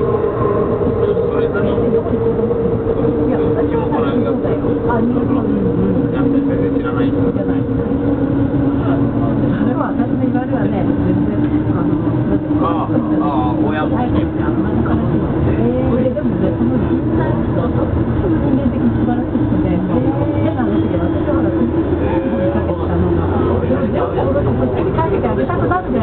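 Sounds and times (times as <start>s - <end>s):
train rumbling in tunnel: 0.0s - 26.0s.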